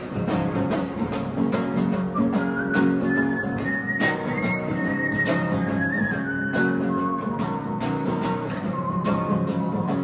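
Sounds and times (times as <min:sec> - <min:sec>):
strummed acoustic guitar: 0:00.0 - 0:10.0
whistled melody: 0:02.0 - 0:10.0.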